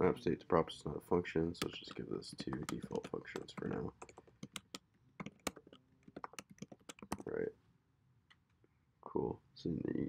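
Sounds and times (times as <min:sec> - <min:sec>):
computer keyboard typing: 0:01.6 - 0:07.3.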